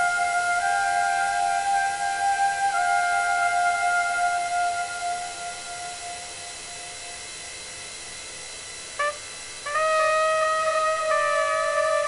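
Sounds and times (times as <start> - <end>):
cornet playing long notes: 0.0 - 7.2, 9.0 - 12.0.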